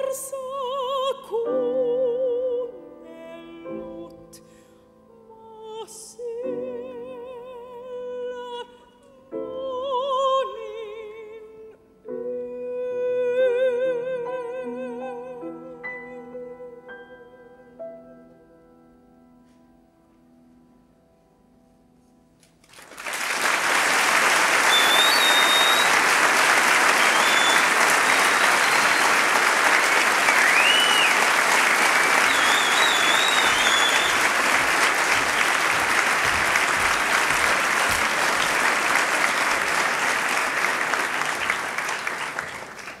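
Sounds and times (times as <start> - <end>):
audience applauding: 22.6 - 43.0
short high whistles: 24.6 - 26.1, 26.9 - 29.4, 30.3 - 31.3, 32.1 - 34.3.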